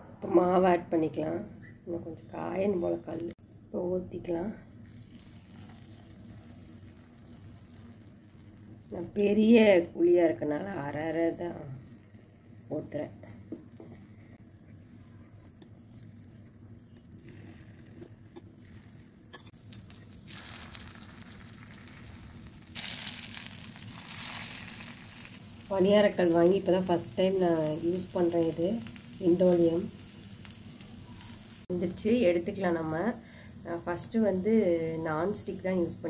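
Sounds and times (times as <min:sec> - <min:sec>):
batter sizzling in oiled pan: 0:04.7 - 0:09.6, 0:13.4 - 0:36.0.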